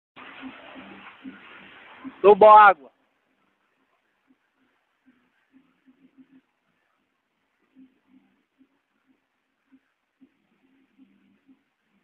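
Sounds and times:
steady rushing noise: 0.2 - 12.0.

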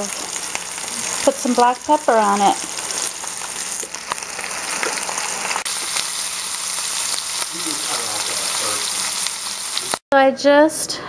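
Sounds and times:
steak sizzling in oil: 0.0 - 10.0.

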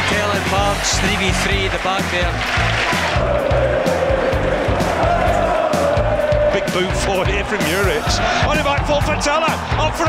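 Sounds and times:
music with steady beat: 0.0 - 10.0
stadium crowd noise: 0.0 - 10.0.

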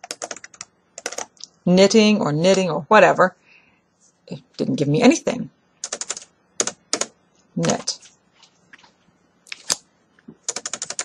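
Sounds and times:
typing on computer keyboard: 0.0 - 1.4, 5.8 - 7.8, 10.4 - 11.0.

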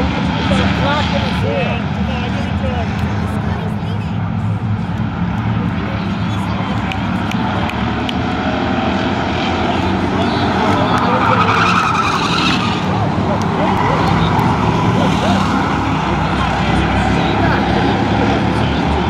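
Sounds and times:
race car engines droning: 0.0 - 19.0.

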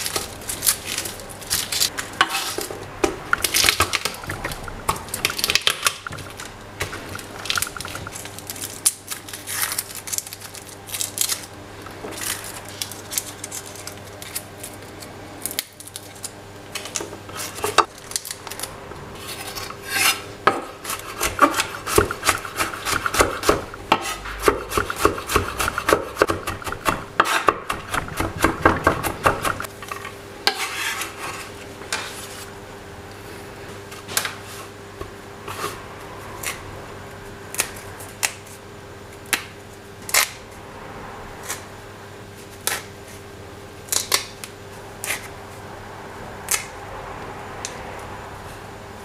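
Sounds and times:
knife chopping on wooden board: 20.5 - 29.7.

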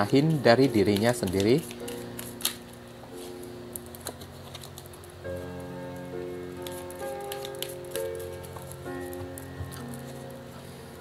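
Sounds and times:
soft background music: 0.0 - 11.0
cards being shuffled: 0.6 - 10.4.

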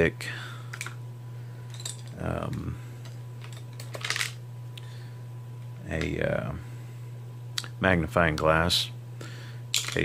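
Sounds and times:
steady low hum: 0.0 - 10.0
small objects clicking and rattling: 3.0 - 4.4, 9.8 - 10.0.

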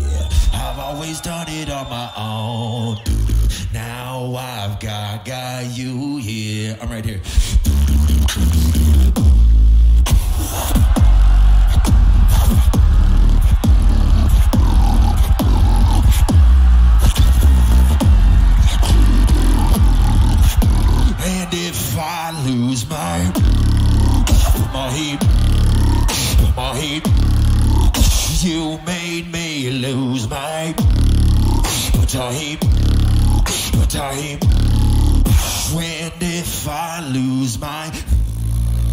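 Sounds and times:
beatbox lip-buzz bass: 0.0 - 1.8, 2.5 - 4.1, 6.8 - 37.2, 37.9 - 38.9
pitched vocal sounds: 0.0 - 38.9
beatbox snare and hi-hat clicks: 7.5 - 21.1, 23.4 - 28.6, 30.8 - 35.8.

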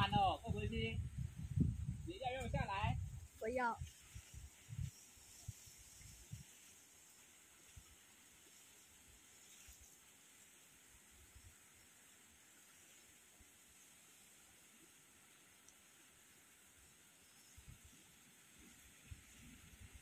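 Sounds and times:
faint outdoor hiss: 0.0 - 20.0.

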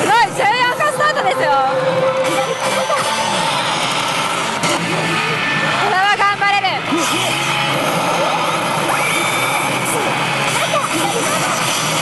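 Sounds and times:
slot machines electronic music: 0.0 - 12.0
voice-like machine call: 0.0 - 12.0.

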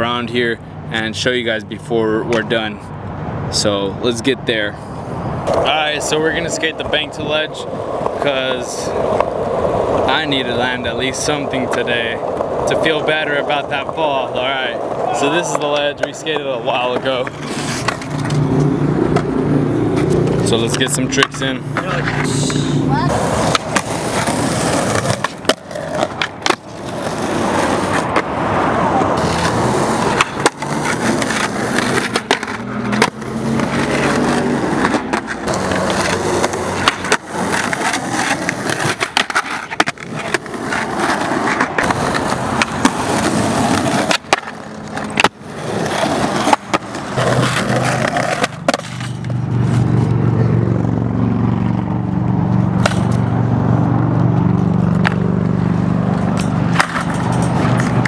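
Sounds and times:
skateboards rolling on concrete: 0.0 - 58.0
skateboard clacks and landings: 29.2 - 49.4.

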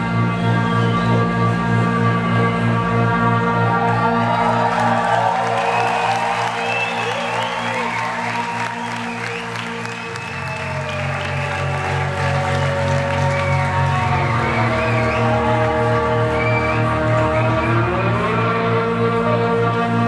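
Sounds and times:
audience applauding and cheering: 2.6 - 20.0.

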